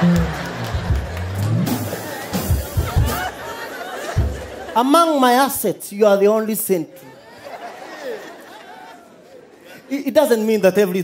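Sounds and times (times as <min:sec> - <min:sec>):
audience murmuring: 0:00.0 - 0:05.0
scattered laughter: 0:01.8 - 0:04.8.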